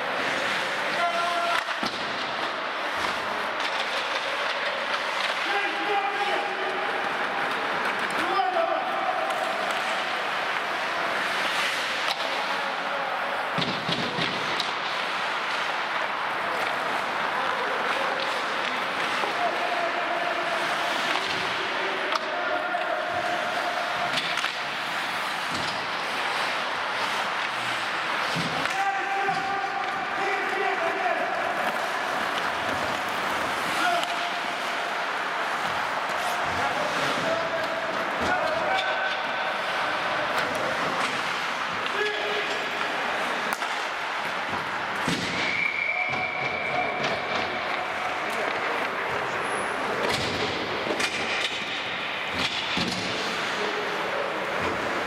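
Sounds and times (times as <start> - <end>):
echoing hall ambience: 0.0 - 55.0
hockey sticks and puck clacking: 0.0 - 55.0
players shouting: 0.0 - 55.0
skates scraping ice: 0.0 - 55.0.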